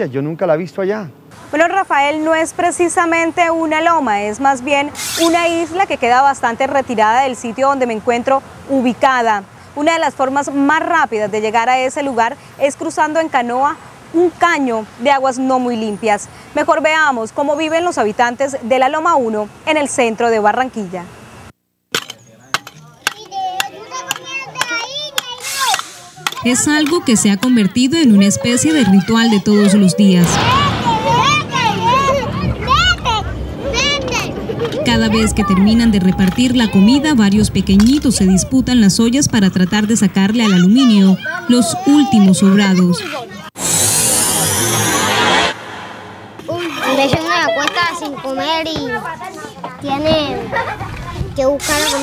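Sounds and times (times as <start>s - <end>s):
falling high tone: 26.9s - 38.8s
dense whooshing noise: 30.2s - 34.8s, 43.6s - 46.7s.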